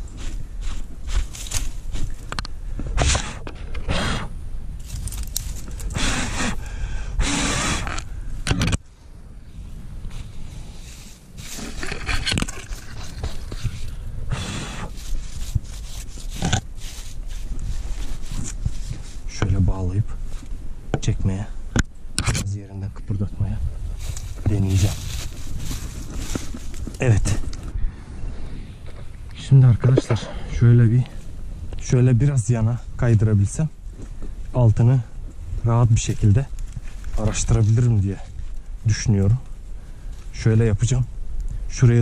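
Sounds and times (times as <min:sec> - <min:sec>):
hands scraping moss off rock: 0:10.8 - 0:14.0, 0:14.9 - 0:19.3.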